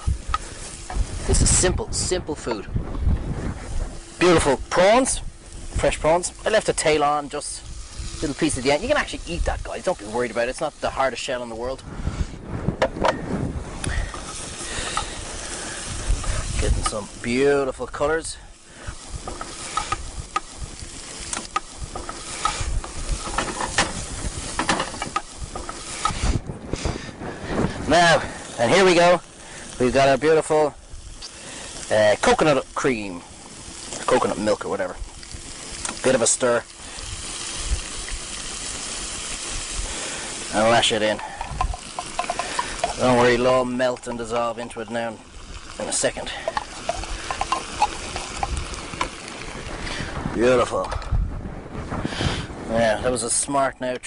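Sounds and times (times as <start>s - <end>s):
food sizzling in a frying pan: 0.0s - 2.5s, 3.3s - 11.8s, 13.6s - 50.8s
wind buffeting microphone: 0.0s - 54.0s
wooden spoon scraping a tin: 41.2s - 43.2s
wooden spoon scraping a pan: 41.2s - 43.4s, 46.3s - 49.2s.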